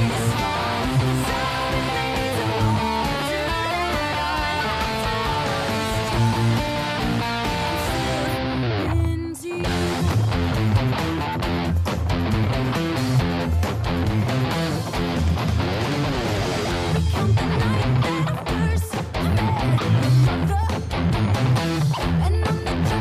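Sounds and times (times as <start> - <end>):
electric guitar melody: 0.0 - 23.0.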